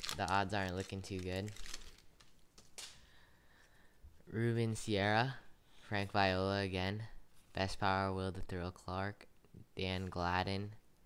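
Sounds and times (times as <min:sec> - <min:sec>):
rustle of cards handled: 0:00.0 - 0:03.0.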